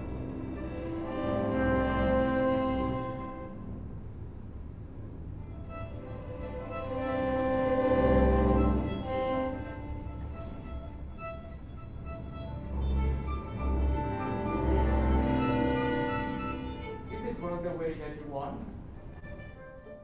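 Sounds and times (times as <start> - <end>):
string orchestra playing col legno: 0.0 - 4.0, 5.4 - 20.0.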